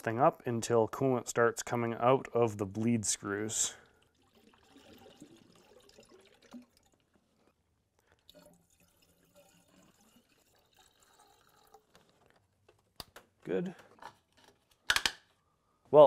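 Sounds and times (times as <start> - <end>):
coolant trickling and dripping: 3.1 - 12.5.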